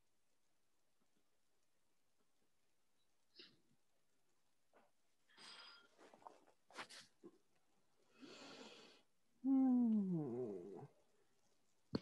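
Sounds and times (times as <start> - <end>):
person breathing in: 8.1 - 9.1.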